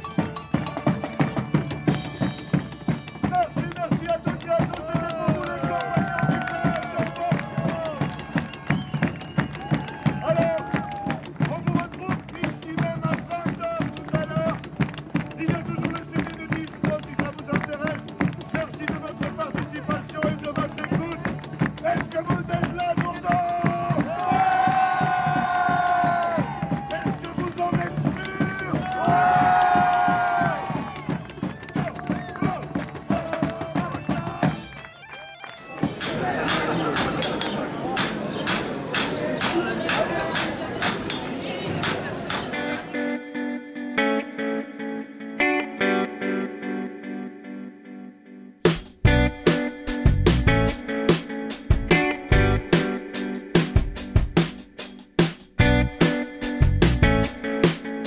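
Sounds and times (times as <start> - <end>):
plucked string instrument: 0.0 - 5.4
large drums beating: 20.8 - 34.7, 48.7 - 58.0.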